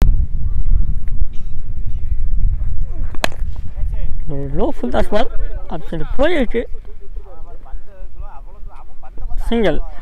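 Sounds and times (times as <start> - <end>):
steady low rumble: 0.0 - 9.4
cricket bat striking ball: 3.1 - 3.5.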